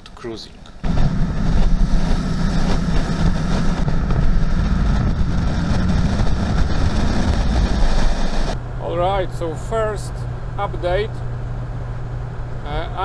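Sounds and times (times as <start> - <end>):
diesel engine drone: 0.0 - 13.0
wind rushing over microphone: 0.8 - 10.7.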